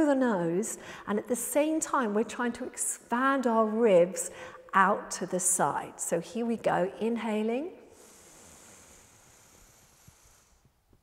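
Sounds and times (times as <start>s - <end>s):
breath inhaled through nose: 7.9s - 10.9s.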